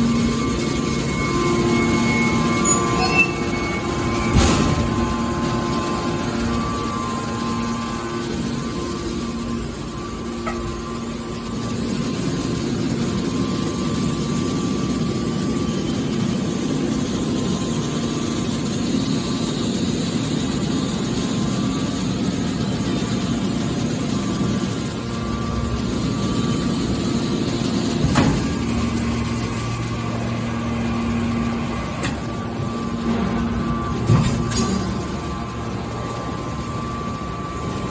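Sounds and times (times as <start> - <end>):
deeper hum: 0.0 - 15.8
hydraulic pump humming and whining: 0.0 - 37.9.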